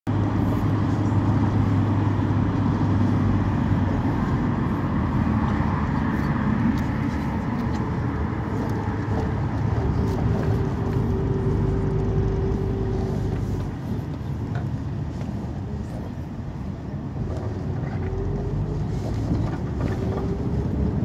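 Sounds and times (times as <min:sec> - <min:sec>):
bus engine drone: 0:00.1 - 0:21.0
road noise: 0:00.1 - 0:21.0.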